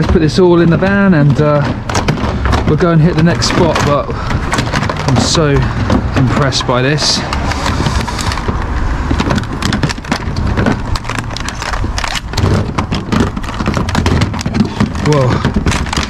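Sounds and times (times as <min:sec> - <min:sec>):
plastic electronics clattering: 0:00.0 - 0:16.0.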